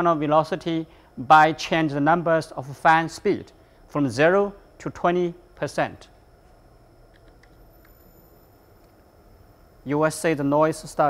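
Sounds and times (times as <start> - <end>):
computer mouse clicks: 7.1 - 8.0.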